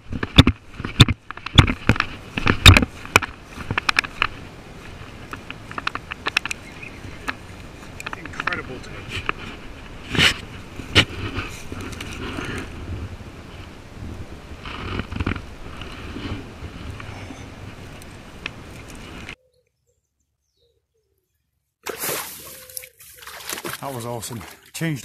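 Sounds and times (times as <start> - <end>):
clothing rubbing on microphone: 0.0 - 19.4.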